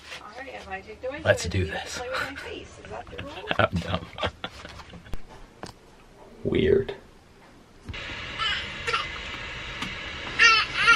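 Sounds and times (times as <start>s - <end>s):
steady background hum: 0.0s - 10.9s.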